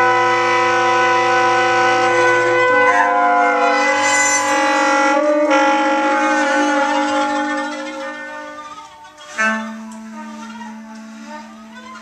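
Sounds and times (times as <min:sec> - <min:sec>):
bass clarinet: 0:00.0 - 0:12.0
bowed cello: 0:00.0 - 0:12.0
tenor saxophone: 0:00.0 - 0:12.0
trumpet: 0:00.0 - 0:12.0.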